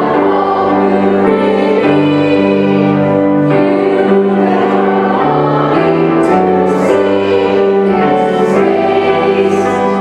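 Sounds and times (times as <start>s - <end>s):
piano and organ playing a hymn: 0.0s - 10.0s.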